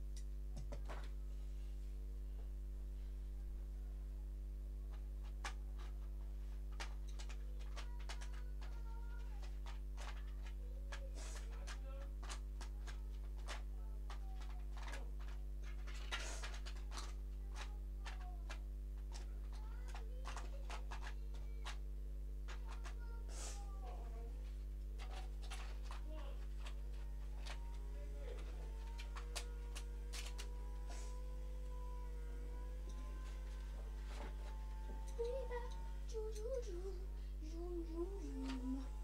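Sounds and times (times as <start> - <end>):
steady low hum: 0.0 - 39.0
faint clicks: 6.8 - 21.8.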